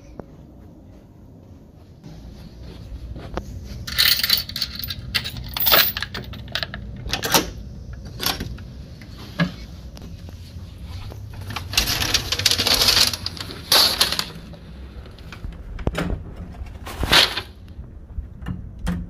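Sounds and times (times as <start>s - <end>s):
metal door chain rattling: 3.9s - 7.4s.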